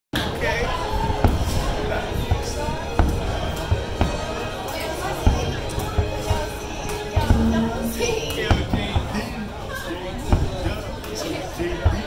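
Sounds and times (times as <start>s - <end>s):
crowd chatter: 0.2s - 12.0s
fireworks bursting with sharp bangs: 1.1s - 4.5s.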